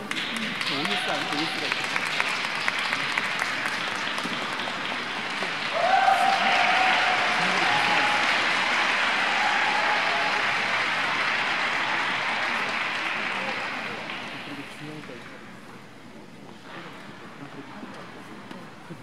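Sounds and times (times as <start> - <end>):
audience applauding: 0.0 - 15.2.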